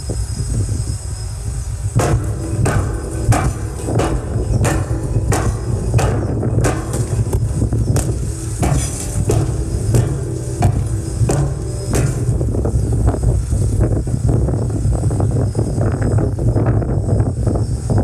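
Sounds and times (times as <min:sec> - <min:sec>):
steady low rumble: 0:01.4 - 0:17.9
buried explosive charges blasting: 0:02.0 - 0:14.2.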